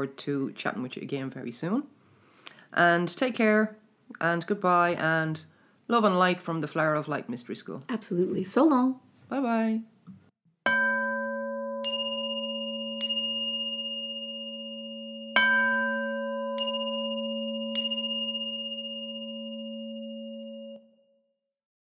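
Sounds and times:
high bright bell strikes: 10.7s - 21.0s
deep bell tone: 10.7s - 21.4s.

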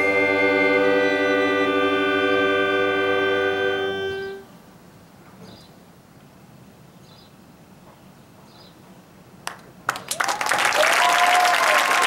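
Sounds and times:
marching band sustained chord: 0.0s - 4.6s.

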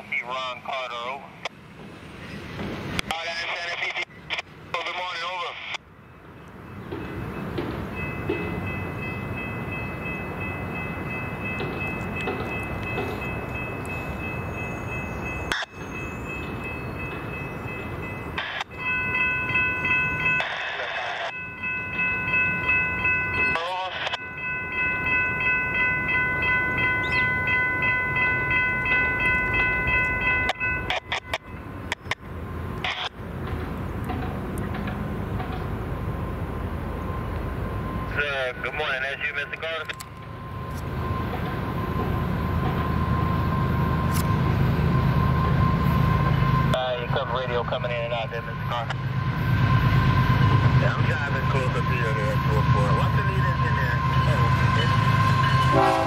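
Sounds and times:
radio scanner chatter: 0.0s - 1.5s, 3.0s - 5.8s, 20.4s - 21.3s, 23.5s - 24.2s, 32.8s - 33.1s, 38.1s - 40.0s, 46.7s - 49.0s, 50.8s - 55.1s
low traffic rumble: 0.0s - 56.0s
railroad crossing bell ringing: 3.0s - 56.0s.

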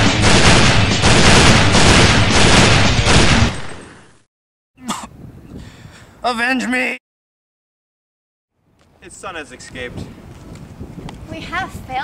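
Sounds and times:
rapid machine-gun fire: 0.0s - 3.8s
single sharp gunshot: 0.0s - 4.1s.

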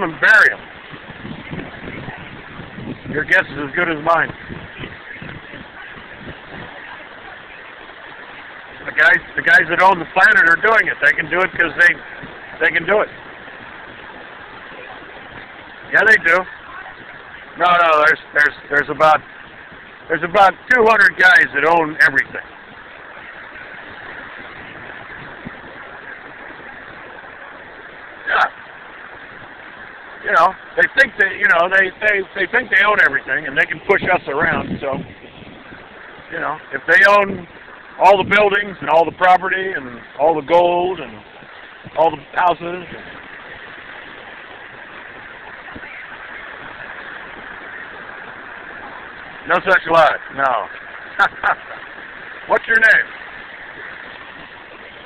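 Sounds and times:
beach background hiss: 0.0s - 55.0s
rushing outdoor background noise: 0.0s - 55.0s.

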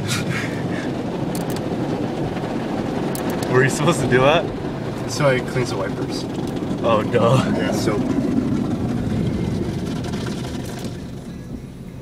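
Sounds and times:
car wash machinery and water: 0.0s - 12.0s.

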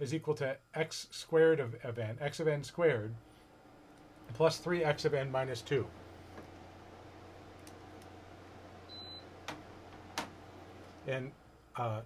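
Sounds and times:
faint room noise: 0.0s - 12.0s
low steady hum: 0.0s - 12.0s.

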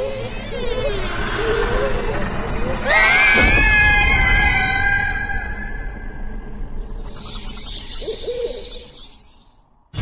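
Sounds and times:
high-pitched scream: 2.8s - 6.1s.

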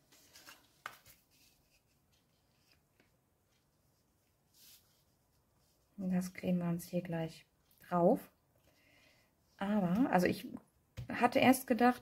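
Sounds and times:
cardstock rustling: 0.0s - 3.8s.

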